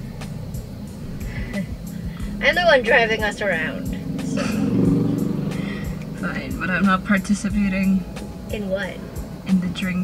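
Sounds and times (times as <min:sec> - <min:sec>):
car engine hum: 0:00.0 - 0:10.0.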